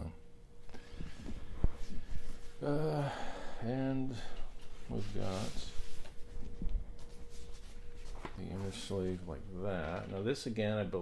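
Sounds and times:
cardboard record sleeve rustling: 4.6 - 10.2.

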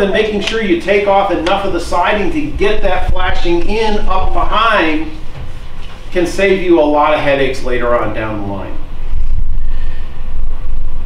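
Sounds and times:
microphone handling rumble: 0.0 - 8.2.

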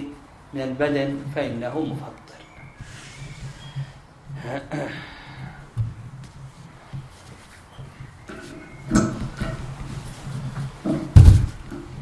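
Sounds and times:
microphone rubbing and scraping: 2.6 - 12.0
microphone handling knocks: 5.7 - 7.1, 7.8 - 12.0.

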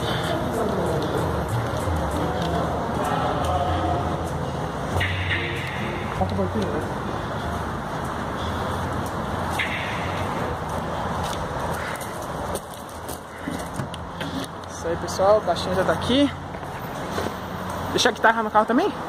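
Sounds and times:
indistinct background voices: 0.0 - 9.4.

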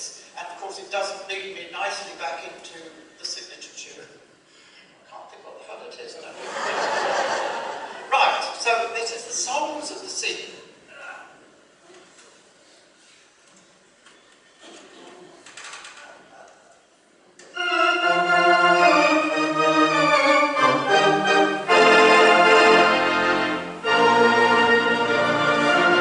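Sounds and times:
theatre organ playing chords: 17.4 - 26.0.

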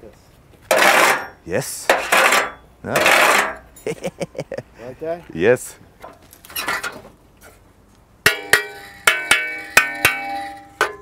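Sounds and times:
metal sheet struck ringing: 8.3 - 11.0.

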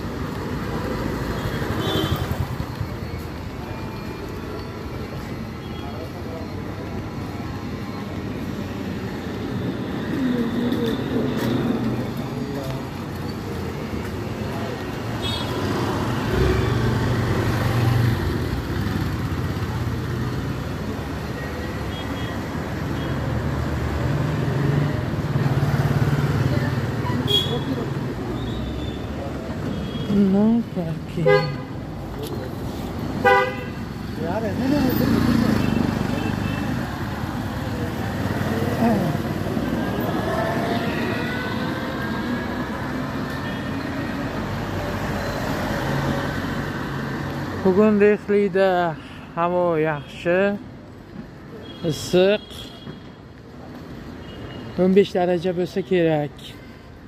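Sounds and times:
motorcycle and car engines passing: 23.3 - 28.2, 33.8 - 43.3.

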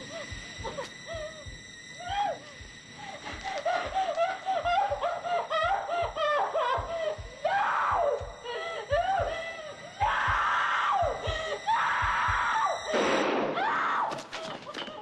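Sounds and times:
woman whimpering and sobbing: 3.2 - 9.9.

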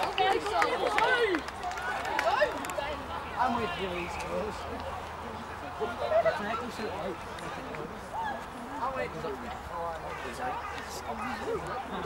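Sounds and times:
people shouting and calling: 10.0 - 12.0.

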